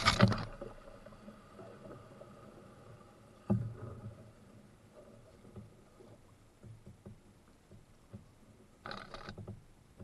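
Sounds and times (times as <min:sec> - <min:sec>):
paddle splashing and knocking: 0:00.0 - 0:00.8, 0:05.0 - 0:10.0.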